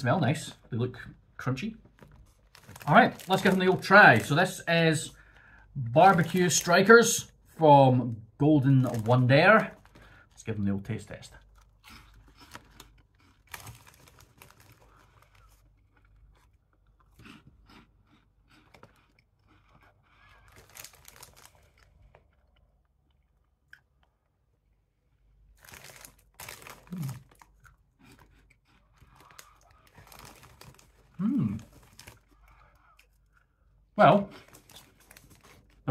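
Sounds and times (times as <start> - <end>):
person chewing crunchy snacks: 1.9 - 7.4, 11.4 - 24.4, 25.5 - 35.9.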